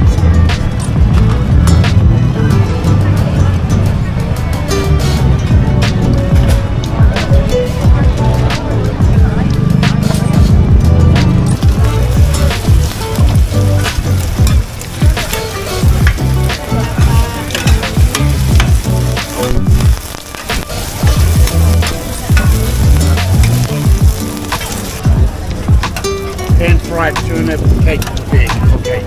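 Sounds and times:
oil sizzling in a pan: 11.6s - 25.1s.

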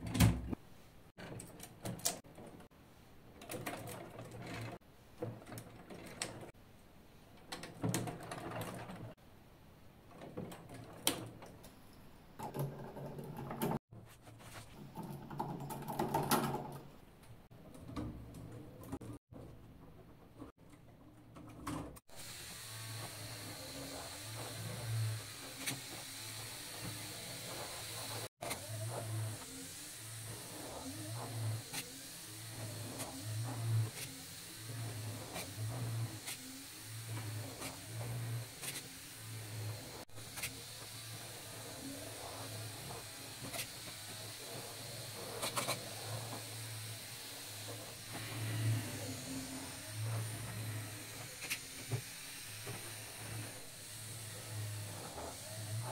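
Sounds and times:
electric motors whirring: 22.1s - 55.9s.

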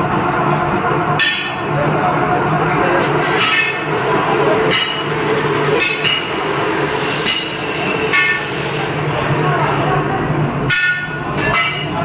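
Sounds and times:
sharp metallic clank with ring: 7.2s - 8.5s.

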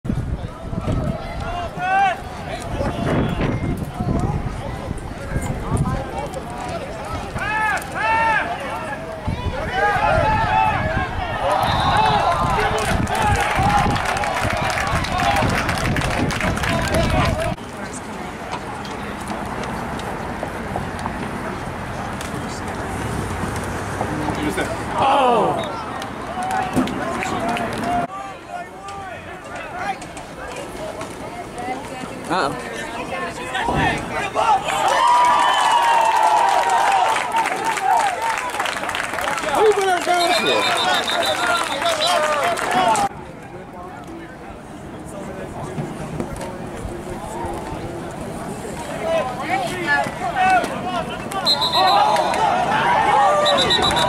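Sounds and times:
rumbling outdoor noise: 0.0s - 54.0s
people calling out: 24.9s - 30.0s, 39.5s - 43.1s, 49.0s - 54.0s.

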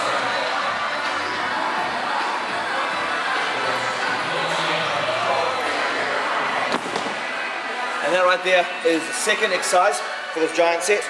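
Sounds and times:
gym background noise: 0.0s - 11.0s.

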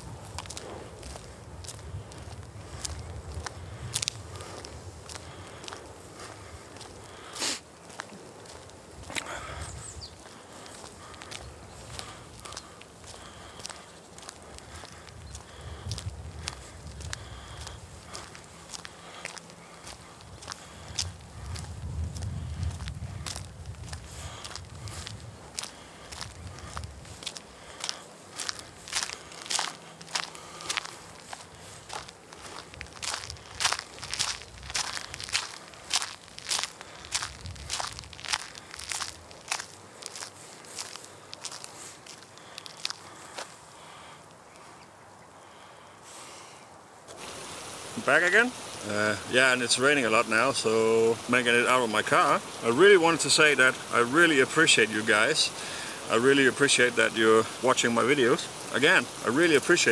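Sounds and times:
footsteps crunching on asphalt: 0.0s - 46.4s, 47.0s - 59.9s.

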